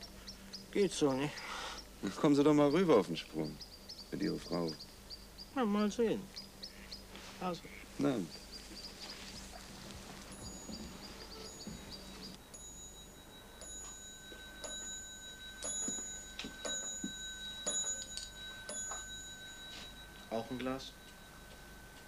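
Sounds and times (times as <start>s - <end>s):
fast high chirping: 8.0s - 13.7s.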